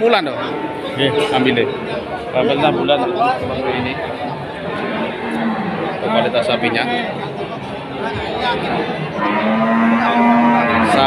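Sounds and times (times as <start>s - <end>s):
cow mooing: 4.7s - 6.3s, 9.1s - 11.0s.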